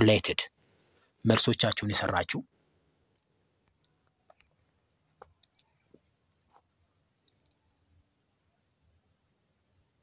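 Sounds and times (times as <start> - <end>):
person speaking: 0.0 - 0.6, 1.2 - 2.5.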